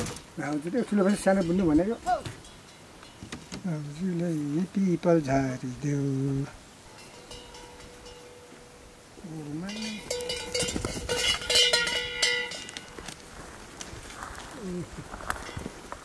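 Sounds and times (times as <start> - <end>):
cattle bell clanking: 0.6 - 4.0, 6.9 - 13.2, 15.3 - 15.7.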